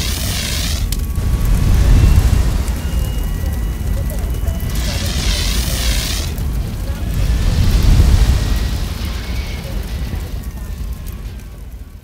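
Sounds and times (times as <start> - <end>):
loud deep rumble: 0.0 - 12.0.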